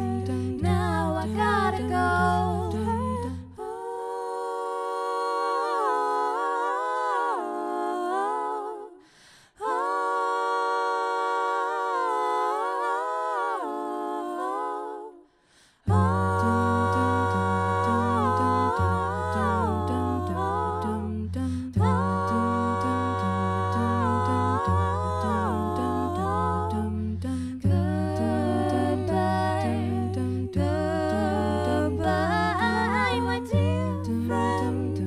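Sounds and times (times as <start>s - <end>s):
women singing wordless chords: 0.0s - 35.0s.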